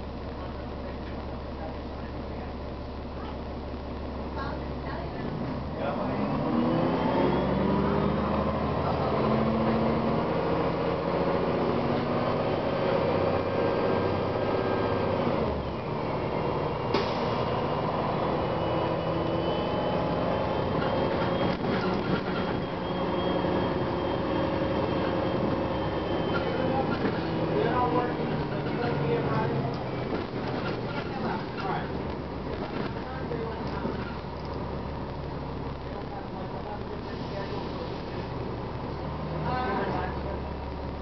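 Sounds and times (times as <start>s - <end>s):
bus engine and transmission whine: 0.0s - 41.0s.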